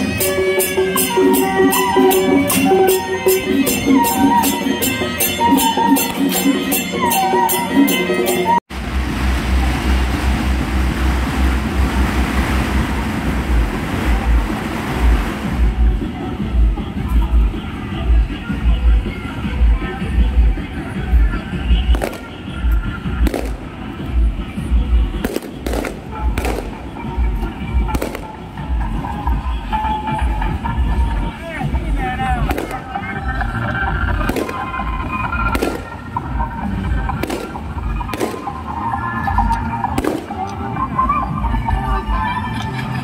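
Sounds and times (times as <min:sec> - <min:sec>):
procession music with low drum: 0:00.0 - 0:43.0
wind rumbling on microphone: 0:08.8 - 0:16.8
firecracker bang: 0:21.9 - 0:22.4, 0:23.2 - 0:23.7, 0:25.2 - 0:26.8, 0:27.9 - 0:28.4, 0:32.5 - 0:32.9, 0:34.2 - 0:34.8, 0:35.5 - 0:36.0, 0:37.2 - 0:38.6, 0:40.0 - 0:40.4.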